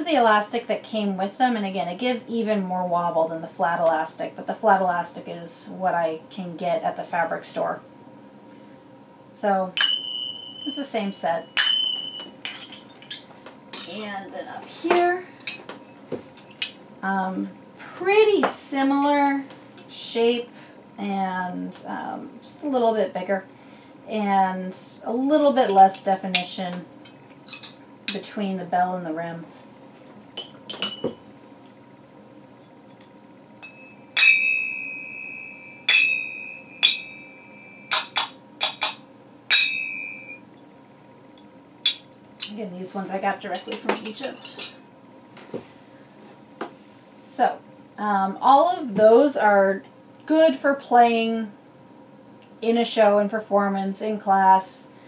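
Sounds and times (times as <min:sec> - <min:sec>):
ringing cymbal strike: 0:09.8 - 0:12.4, 0:33.6 - 0:40.4
finger cymbals clinking: 0:09.8 - 0:13.2, 0:33.0 - 0:40.4.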